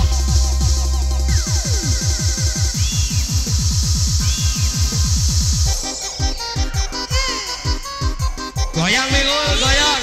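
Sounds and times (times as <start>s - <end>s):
electronic dance music over speakers: 0.0s - 10.0s
synth chords: 0.0s - 10.0s.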